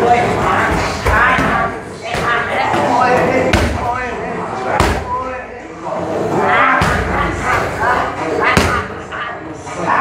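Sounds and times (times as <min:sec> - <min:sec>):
voices in a gym: 0:00.0 - 0:10.0.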